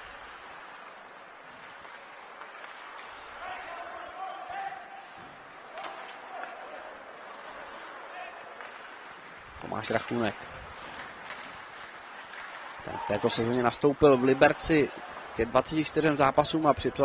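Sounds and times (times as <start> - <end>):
low rink noise: 0.0 - 17.0.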